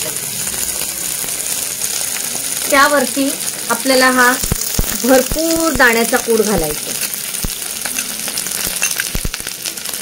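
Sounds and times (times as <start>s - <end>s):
potatoes sizzling in hot oil: 0.0s - 10.0s.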